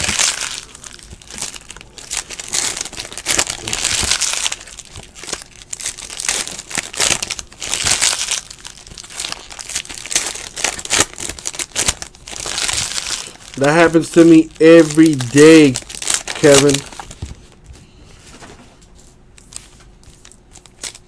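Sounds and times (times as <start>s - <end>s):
foil wrappers crinkling and tearing: 0.0s - 17.5s, 19.4s - 21.0s.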